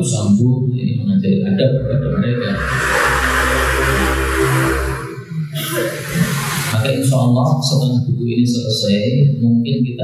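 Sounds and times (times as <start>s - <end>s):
man speaking into a microphone: 0.0s - 2.7s, 6.8s - 10.0s
steady low hum: 1.6s - 7.2s.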